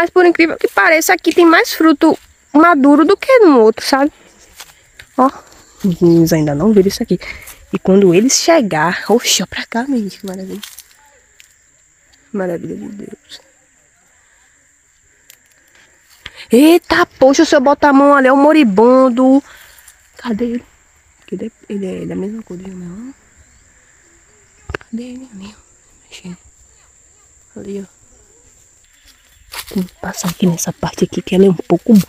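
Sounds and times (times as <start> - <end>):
high-pitched insect hum: 0.0 - 32.0
quiet rural background: 0.0 - 32.0
person speaking: 29.7 - 32.0.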